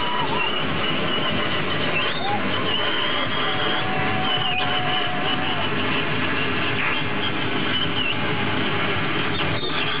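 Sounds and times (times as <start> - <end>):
wavering whistling tones: 0.0 - 8.6, 9.2 - 10.0.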